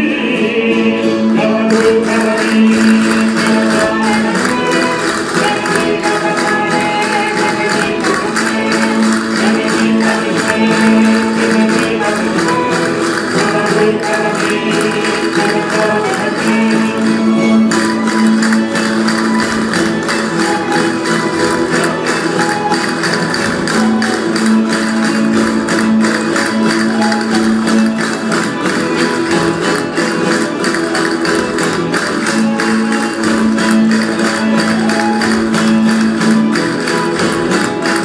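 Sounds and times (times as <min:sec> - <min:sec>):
strummed guitars and lutes: 0:00.0 - 0:38.0
castanets clicking: 0:01.7 - 0:16.9, 0:17.6 - 0:38.0.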